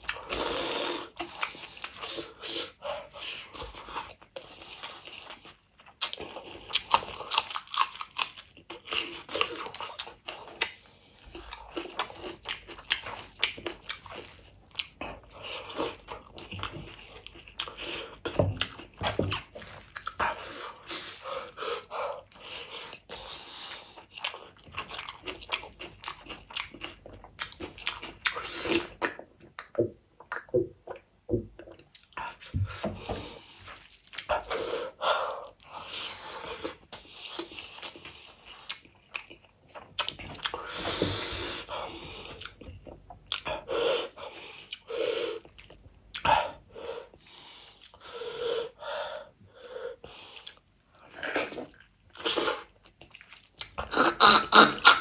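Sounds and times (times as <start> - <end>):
close chewing with lip smacks: 1.0 - 21.2, 22.2 - 34.5, 36.6 - 40.7, 42.1 - 43.7, 47.2 - 48.0, 50.3 - 54.0.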